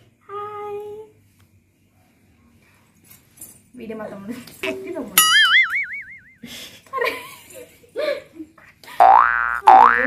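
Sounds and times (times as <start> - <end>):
cartoon boing: 5.2 - 6.4, 9.0 - 10.0.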